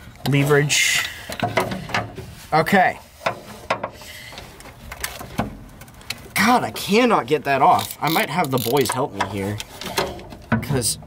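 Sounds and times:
ratchet metallic clicks and taps: 7.8 - 9.4.

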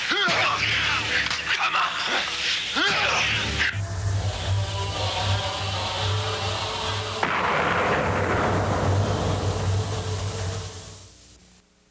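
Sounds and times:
loud roaring blast: 7.2 - 11.0.

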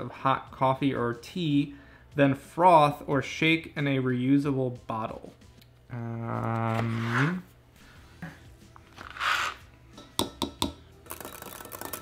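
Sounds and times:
spoon stirring in glass cup: 9.0 - 12.0
spoon tapping on glass: 10.0 - 12.0.

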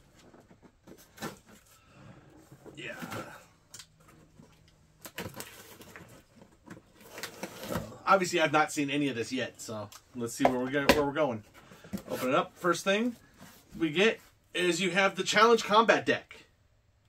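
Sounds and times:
cardboard scraping and rustling: 4.0 - 8.0, 11.4 - 13.8.

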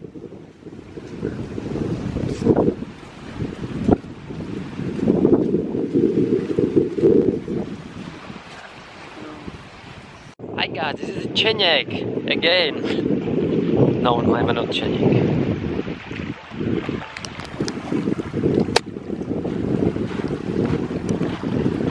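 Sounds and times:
wind buffeting microphone: 0.0 - 21.9.

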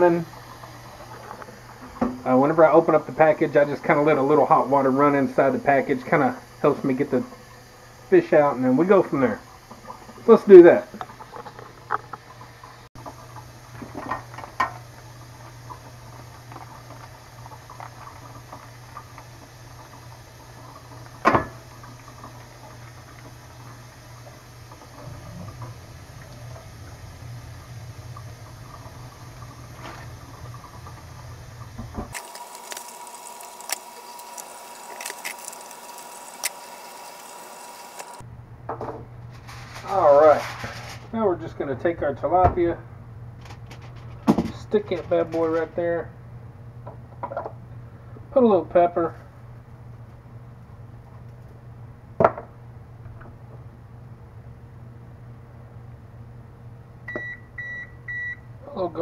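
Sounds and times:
water running into steel sink: 0.0 - 38.2.

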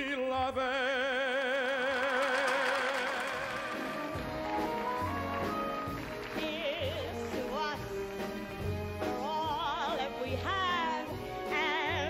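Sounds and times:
big band orchestra playing: 1.5 - 12.0.

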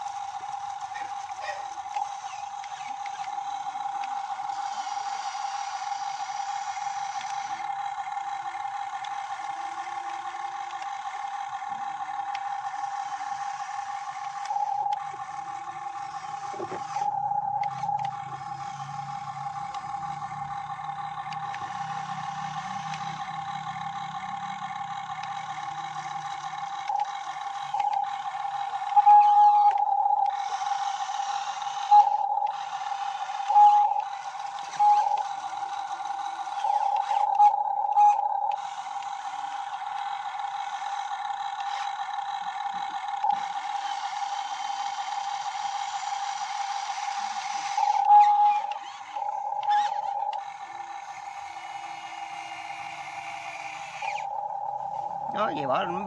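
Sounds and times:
electric motor whining: 0.0 - 56.0.

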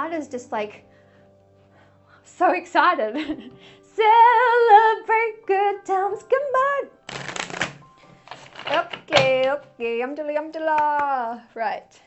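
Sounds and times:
soft handling of cards: 7.1 - 9.4
cards riffling: 7.1 - 9.6.

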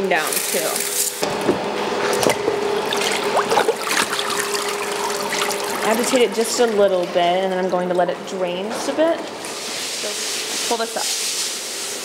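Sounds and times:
water dripping into vat: 2.3 - 8.1
water splashing and trickling: 2.8 - 8.1.

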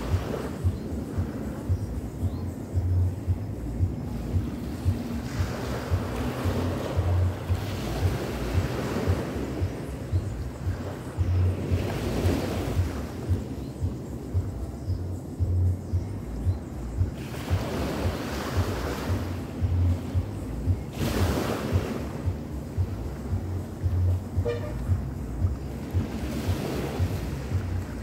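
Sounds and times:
small waves breaking on shore: 0.0 - 2.5, 3.6 - 15.3, 17.0 - 28.0
wind buffeting microphone: 0.0 - 28.0.

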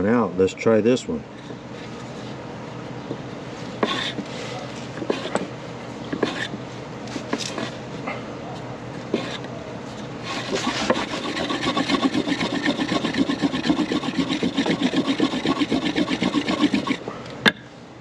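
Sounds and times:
wooden block rubbing on board: 3.8 - 4.3, 5.0 - 5.5, 6.2 - 6.6, 7.4 - 7.8, 9.1 - 9.5, 10.2 - 17.0.

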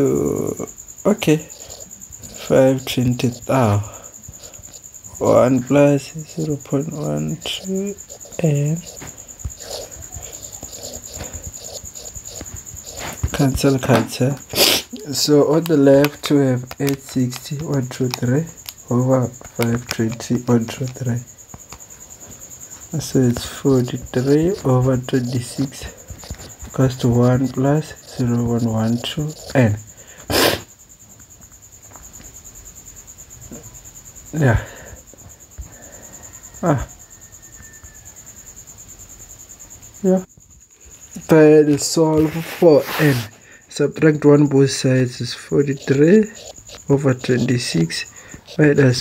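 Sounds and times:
person breathy burst: 14.5 - 15.0, 30.0 - 30.7.

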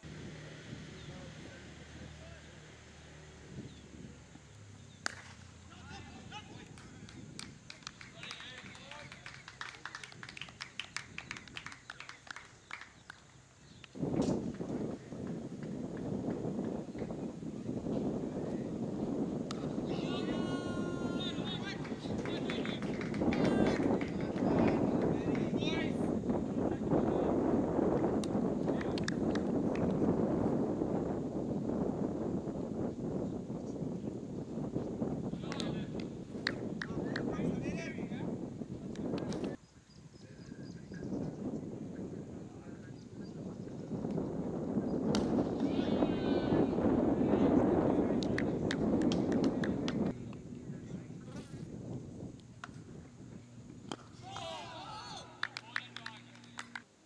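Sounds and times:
wind on microphone: 0.0 - 56.8
distant voices calling: 14.7 - 27.7.

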